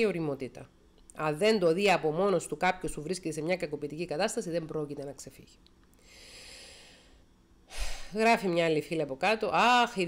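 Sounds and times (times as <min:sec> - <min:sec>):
sharp intake of breath: 0:06.0 - 0:08.2
woman breathing: 0:06.0 - 0:08.2.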